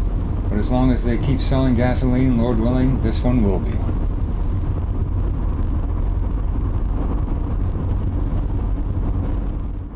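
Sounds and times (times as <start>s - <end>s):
road noise: 0.0s - 9.9s
rotary engine drone in car cabin: 0.0s - 9.9s.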